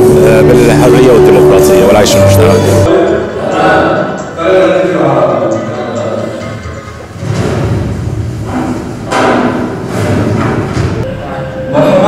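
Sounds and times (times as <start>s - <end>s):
loud swells: 0.0s - 5.3s.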